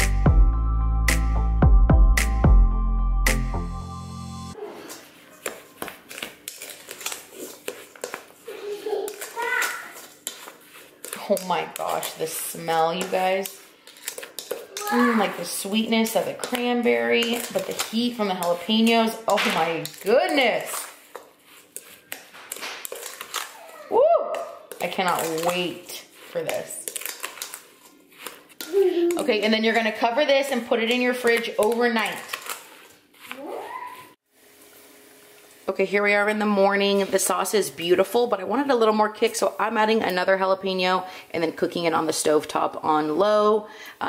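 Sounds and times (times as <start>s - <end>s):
background music: 0.0s - 4.6s
spatula scraping in metal bowl: 9.1s - 23.5s.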